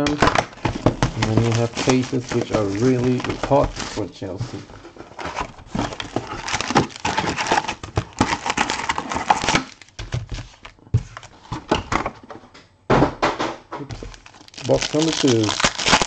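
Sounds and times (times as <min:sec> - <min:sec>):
cardboard box rustling and scraping: 0:00.6 - 0:09.4.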